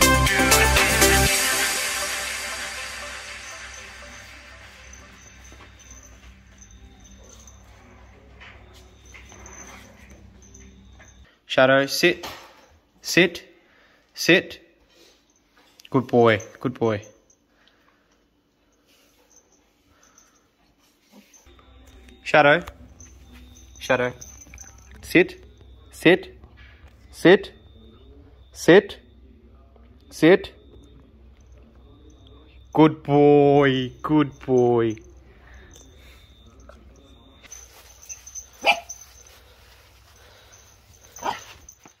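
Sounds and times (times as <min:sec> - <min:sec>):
steady low hum: 0:01.3 - 0:11.3, 0:21.3 - 0:41.9
puppy barking: 0:37.7 - 0:39.4, 0:40.4 - 0:41.8.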